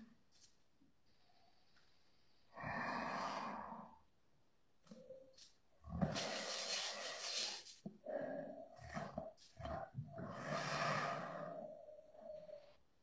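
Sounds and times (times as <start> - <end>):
breathy vocal sounds and exhalations: 2.5 - 4.1, 4.9 - 12.8.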